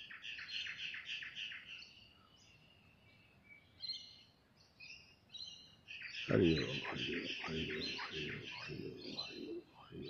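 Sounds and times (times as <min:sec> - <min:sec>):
small birds chirping: 0:00.0 - 0:10.0
low murmuring human voice: 0:06.3 - 0:10.0.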